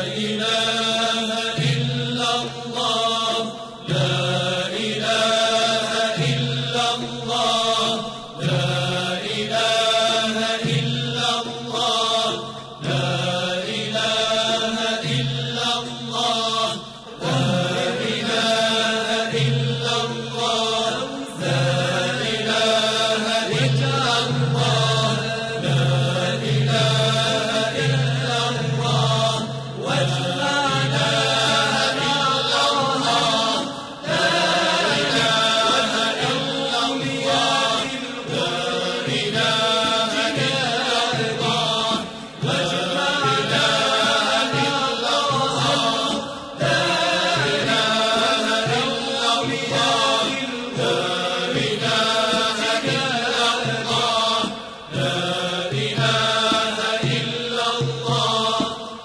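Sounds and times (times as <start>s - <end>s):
melodic vocal chanting: 0.0s - 59.0s.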